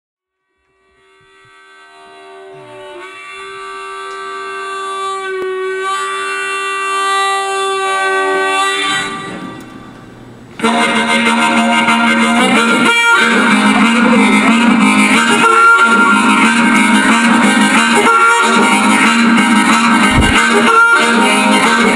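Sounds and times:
harmonica long held note: 0.3s - 21.9s
electric guitar: 10.5s - 21.9s
bass guitar: 18.7s - 21.7s
drums: 19.6s - 20.7s.

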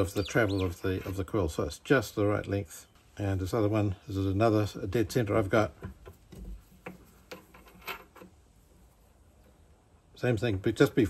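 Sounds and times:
faint metallic clicks and taps: 5.7s - 8.4s.

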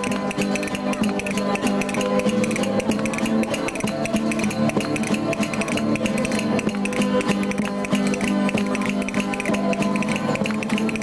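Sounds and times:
string band playing: 0.0s - 11.0s.

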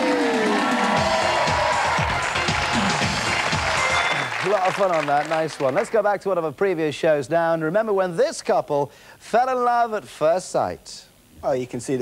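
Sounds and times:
show music: 0.0s - 5.6s
audience applauding and cheering: 0.0s - 6.1s.

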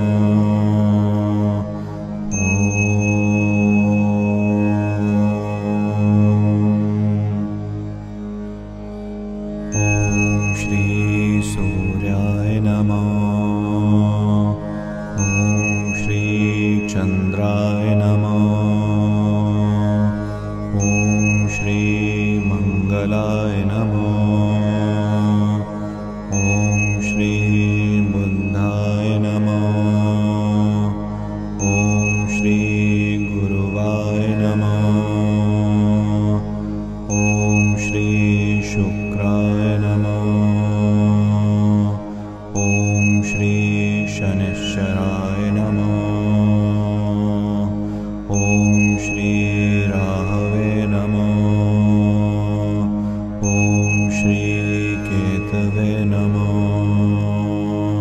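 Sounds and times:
mantra chanted to music: 0.0s - 8.8s, 9.4s - 58.0s
low drone: 0.0s - 58.0s
high ringing tone: 2.3s - 6.3s, 9.7s - 13.2s, 15.2s - 19.2s, 20.8s - 25.3s, 26.3s - 30.3s, 31.6s - 35.4s, 37.1s - 40.6s, 42.6s - 46.6s, 48.3s - 52.0s, 53.4s - 57.4s.

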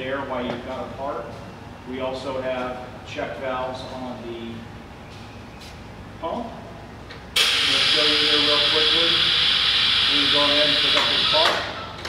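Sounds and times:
compressed air hissing: 7.4s - 11.4s.

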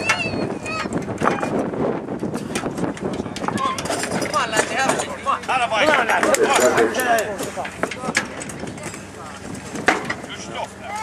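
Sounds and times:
voices talking and calling out: 0.0s - 1.8s, 2.9s - 11.0s.

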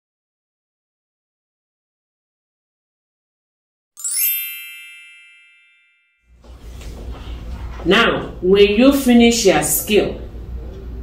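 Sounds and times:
bell-like chime: 4.0s - 6.4s
low room hum: 6.4s - 11.0s.

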